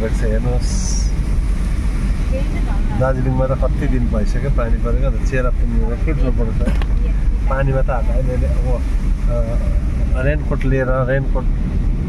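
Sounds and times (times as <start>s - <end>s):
car cabin rumble on wet road: 0.0s - 12.0s.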